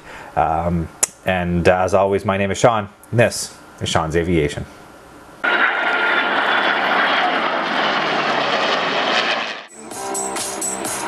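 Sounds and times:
military jet flying past: 5.4s - 10.1s.

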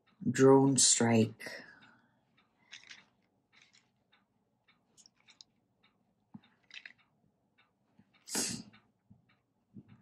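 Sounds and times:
fingers handling cards: 2.6s - 3.9s, 5.0s - 5.5s, 6.4s - 7.0s.

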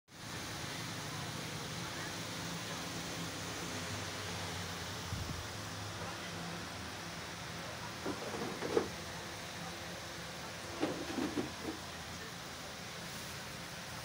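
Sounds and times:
faint indistinct voices: 0.1s - 14.0s
room noise hiss: 0.1s - 14.0s.

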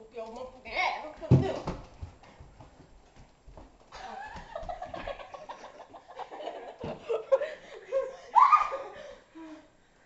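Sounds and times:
hurried footsteps on hard floor: 1.1s - 5.4s.

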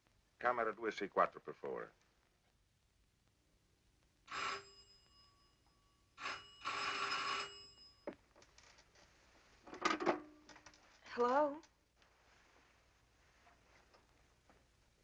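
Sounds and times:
telephone bell ringing: 4.3s - 8.1s.

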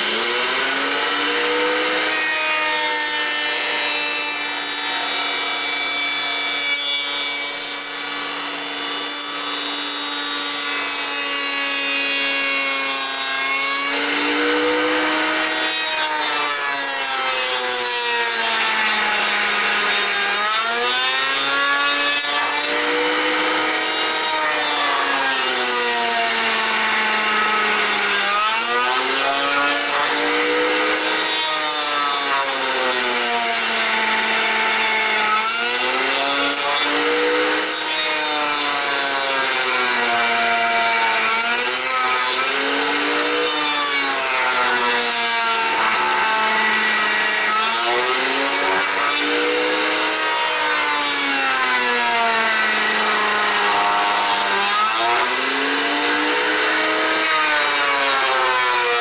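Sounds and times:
router cutting wood: 0.0s - 59.0s.

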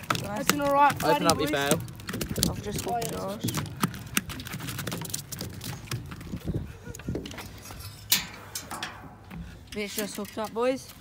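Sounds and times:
handling clicks and rattles: 0.0s - 11.0s.

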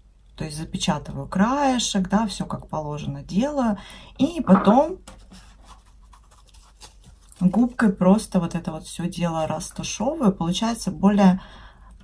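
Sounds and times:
sponge rustling and scratching: 4.7s - 8.3s.

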